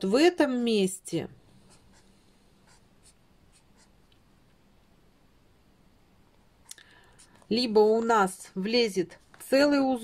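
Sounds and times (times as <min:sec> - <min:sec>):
marker scratching on paper: 0:01.7 - 0:04.0.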